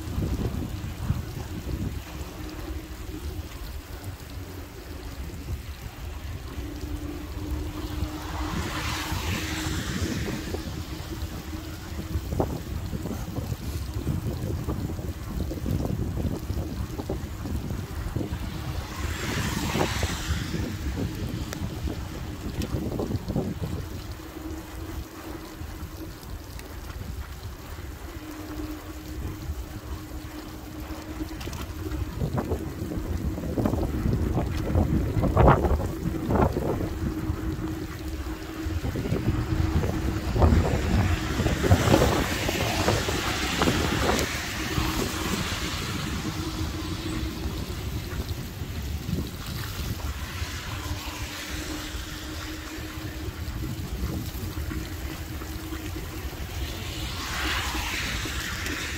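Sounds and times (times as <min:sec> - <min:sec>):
faint steady hum: 0:00.0 - 0:58.9
low rumble of riding: 0:00.0 - 0:58.9
wind buffeting microphone: 0:00.0 - 0:58.9
cars hissing past on wet road: 0:06.5 - 0:12.2, 0:18.4 - 0:22.2, 0:35.3 - 0:58.9.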